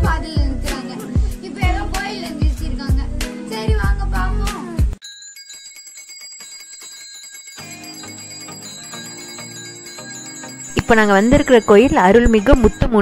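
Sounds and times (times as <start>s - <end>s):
music: 0.0s - 5.0s, 7.6s - 13.0s
small hand bell ringing rapidly: 5.0s - 13.0s.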